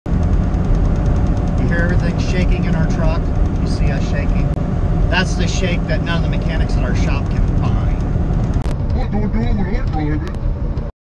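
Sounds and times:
truck cab rattling: 0.1s - 10.8s
truck engine low rumble: 0.1s - 10.9s
person speaking: 8.9s - 10.4s.

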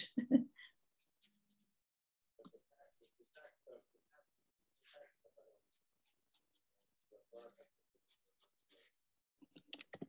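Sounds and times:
pencil scratching on paper: 0.8s - 1.9s, 2.8s - 9.6s.

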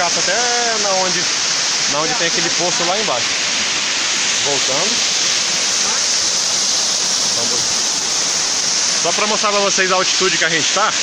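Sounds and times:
waterfall rushing: 0.0s - 11.0s.

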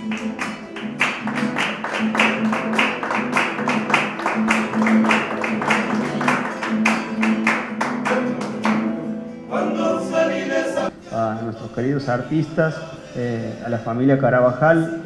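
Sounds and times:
hand claps: 0.0s - 9.0s
acoustic guitar strumming: 0.0s - 13.1s.

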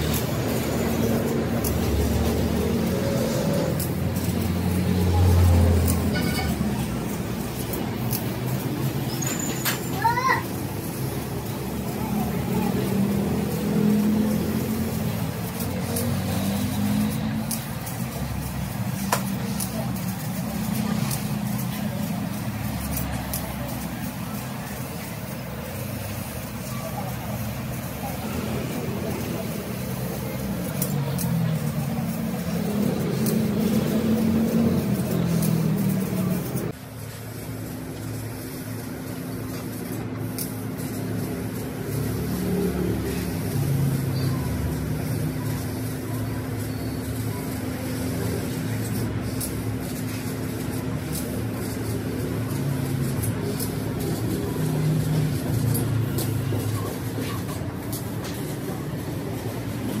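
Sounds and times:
indistinct voices: 0.0s - 36.8s
laser cutting machine: 0.0s - 60.0s.

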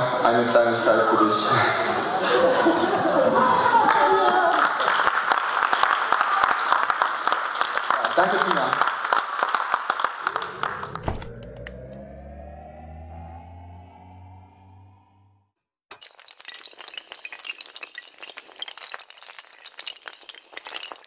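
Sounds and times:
applause: 3.4s - 11.0s
synthesized rising tone: 10.2s - 15.6s
glass shattering and clinking: 15.9s - 21.0s.

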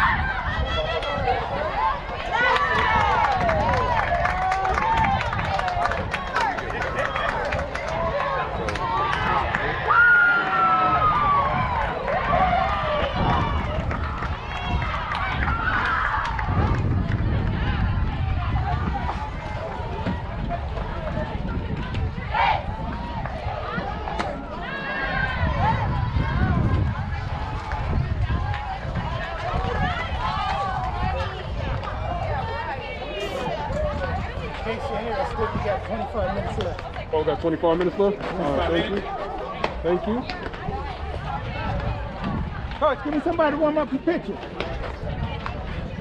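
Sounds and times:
voices shouting and calling out: 0.0s - 46.0s.

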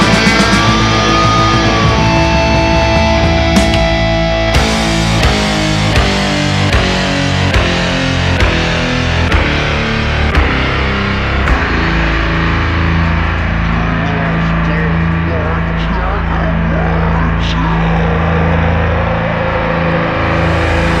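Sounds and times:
drum hit: 0.0s - 13.6s
distorted electric guitar chord: 0.0s - 21.0s
sustained bass note: 0.0s - 21.0s.

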